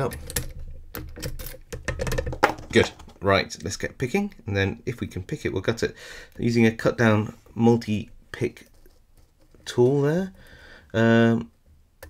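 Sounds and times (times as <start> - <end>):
key turning in padlock: 0.1 - 2.1.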